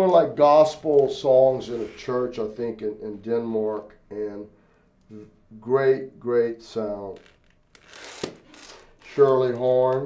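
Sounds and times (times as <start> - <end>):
record sleeves sliding and scraping: 1.5 - 2.1, 7.8 - 9.3.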